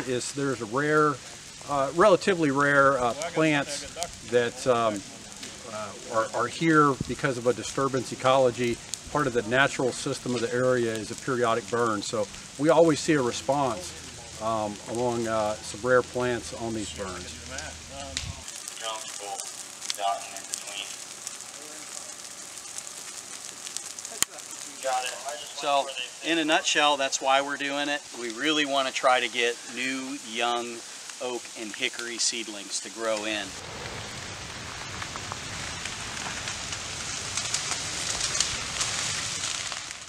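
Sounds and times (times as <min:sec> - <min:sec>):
fire crackling through dry leaves: 0:00.0 - 0:40.0.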